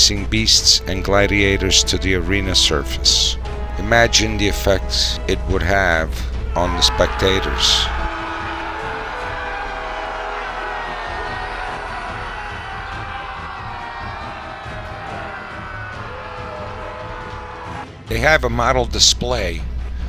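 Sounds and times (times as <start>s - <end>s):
background music: 0.0s - 20.0s
crowd cheering and shouting: 6.5s - 17.9s.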